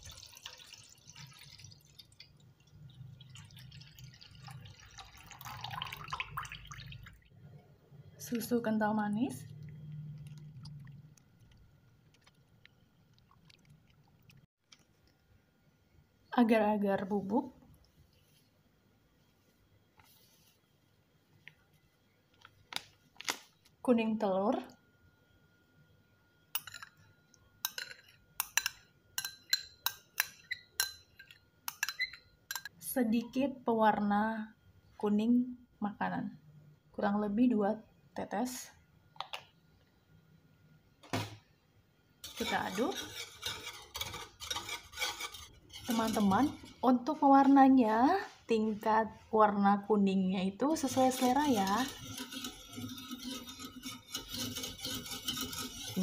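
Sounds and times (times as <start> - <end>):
clinks against glass bowl: 26.6 - 32.8
whisk scraping metal saucepan: 42.2 - 47.1, 50.7 - 56.0.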